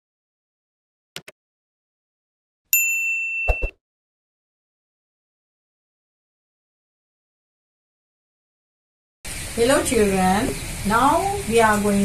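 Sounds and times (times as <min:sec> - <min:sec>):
bell-like notification ding: 0:02.8 - 0:03.8.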